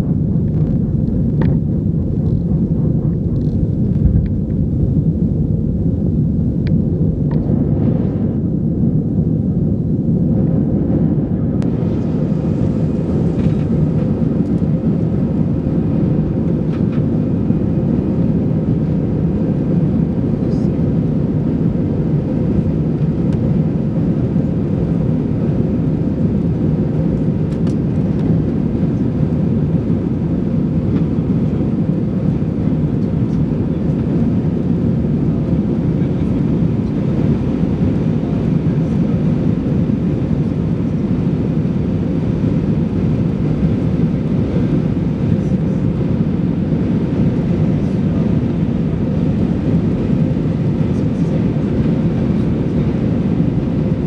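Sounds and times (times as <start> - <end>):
airplane cabin engine rumble: 0.0 - 54.0.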